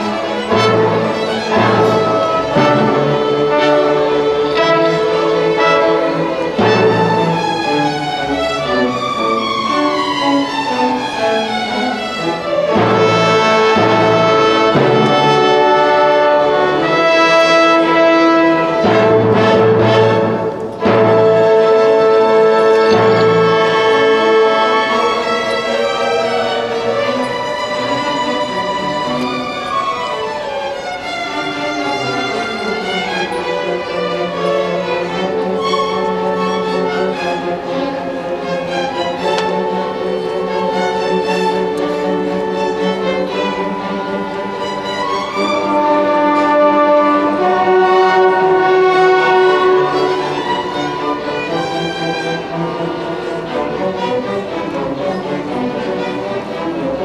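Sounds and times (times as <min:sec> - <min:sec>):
symphony orchestra playing: 0:00.0 - 0:57.0.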